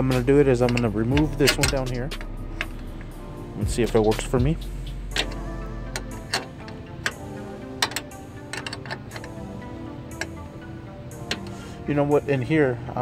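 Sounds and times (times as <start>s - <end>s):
background music: 0.0s - 13.0s
wrench clicking on metal bolt: 5.1s - 7.2s, 7.8s - 9.4s.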